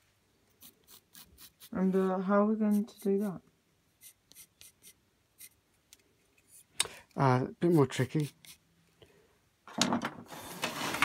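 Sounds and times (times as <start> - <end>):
wood scraping on workbench: 10.3 - 11.0.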